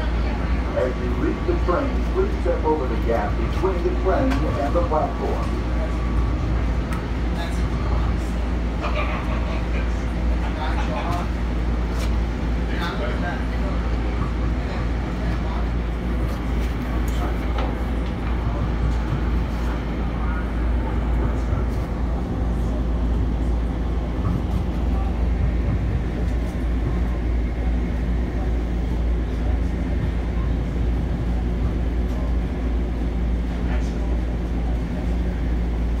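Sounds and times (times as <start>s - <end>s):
faint voices: 0.0s - 36.0s
train car rumble on track: 0.0s - 36.0s.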